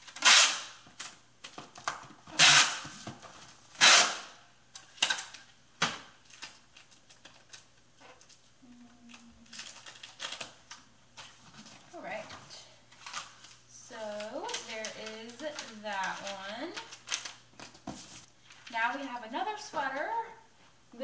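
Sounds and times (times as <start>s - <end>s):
packing tape ripping: 0.0s - 2.9s, 3.8s - 8.4s, 9.1s - 10.8s, 14.2s - 17.8s.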